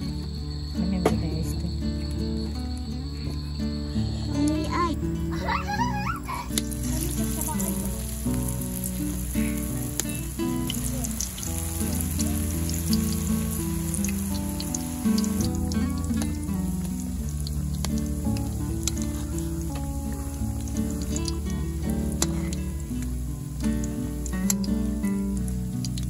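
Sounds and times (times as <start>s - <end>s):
food deep-frying in oil: 5.7s - 26.0s.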